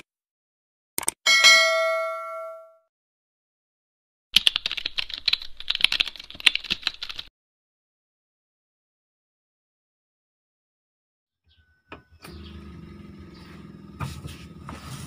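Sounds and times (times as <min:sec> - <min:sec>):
bell-like ding: 0:01.3 - 0:02.8
rapid keyboard-like clicking: 0:04.4 - 0:07.3.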